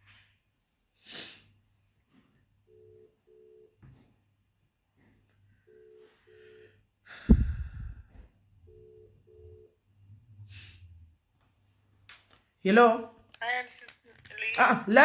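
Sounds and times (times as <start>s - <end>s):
telephone ringback tone: 2.7s - 3.8s, 5.7s - 6.8s, 8.7s - 9.8s.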